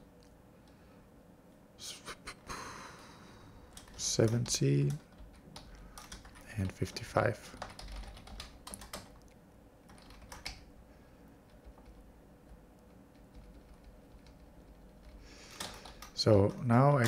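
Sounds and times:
faint steady hum: 0:00.0 - 0:17.0
computer keyboard keystrokes: 0:03.7 - 0:10.7, 0:11.5 - 0:17.0.

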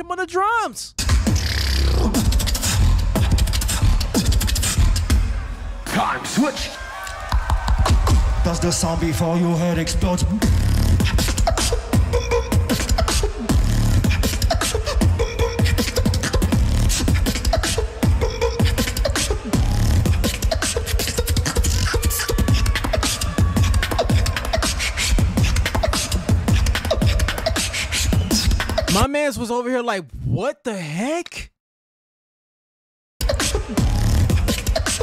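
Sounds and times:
beatboxing into a microphone: 0:01.0 - 0:05.3, 0:08.9 - 0:30.4.

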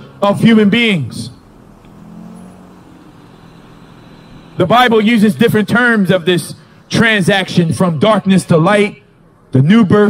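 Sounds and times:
car driving past: 0:00.0 - 0:05.9.

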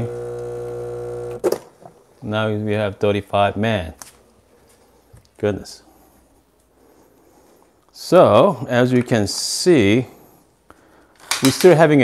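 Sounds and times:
espresso machine pump humming: 0:00.0 - 0:01.4
pump stopping click: 0:00.0 - 0:01.4.

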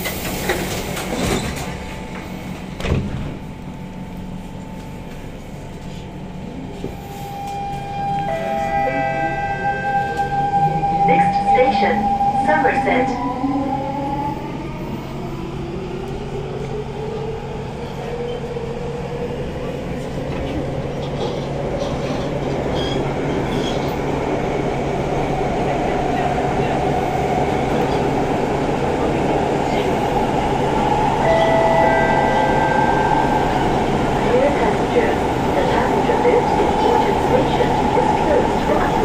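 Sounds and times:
train inverter whine: 0:00.0 - 0:18.4, 0:29.7 - 0:39.0.

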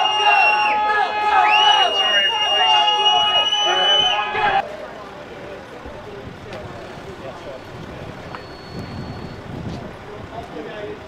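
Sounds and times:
loud steady high tone: 0:00.0 - 0:04.6
crowd murmur: 0:00.0 - 0:11.0.

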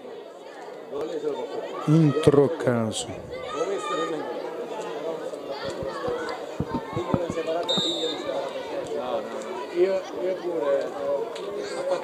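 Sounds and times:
distant voices chattering: 0:03.2 - 0:10.3.

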